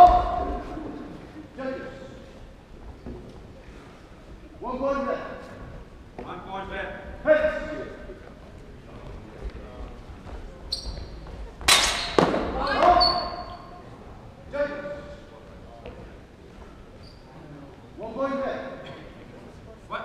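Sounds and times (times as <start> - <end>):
voices echoing in a hall: 0.0 - 20.0
swords clashing: 11.7 - 12.2.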